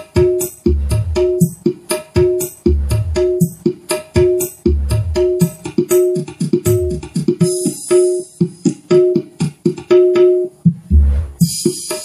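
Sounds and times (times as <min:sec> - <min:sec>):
fast music through speaker: 0:00.0 - 0:12.0
deep bass thumps: 0:00.7 - 0:01.4, 0:02.7 - 0:03.4, 0:04.7 - 0:05.4, 0:10.7 - 0:11.4.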